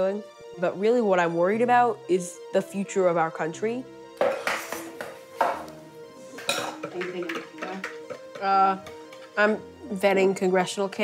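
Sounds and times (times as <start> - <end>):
background music: 0.0 - 11.0
hard objects clinking: 4.2 - 5.7.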